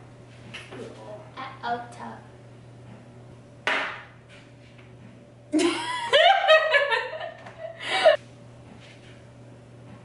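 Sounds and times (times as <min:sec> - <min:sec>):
woman laughing with a gasp: 0:07.6 - 0:08.2.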